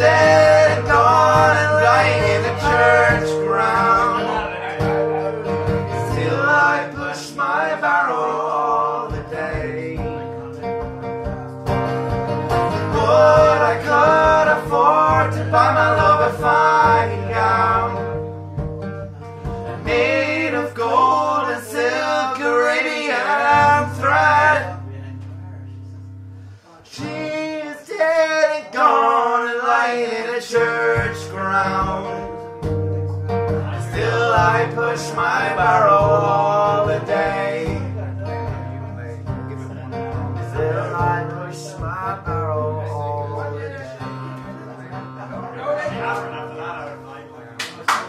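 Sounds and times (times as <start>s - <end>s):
men singing a folk ballad: 0.0s - 10.5s, 12.5s - 18.3s, 19.4s - 24.9s, 26.9s - 32.4s, 33.7s - 38.3s, 40.4s - 43.6s
acoustic guitar strumming: 0.0s - 48.0s.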